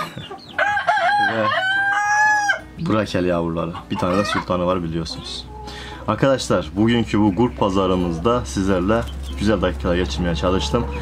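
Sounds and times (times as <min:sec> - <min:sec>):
rooster crowing: 0:00.6 - 0:02.7.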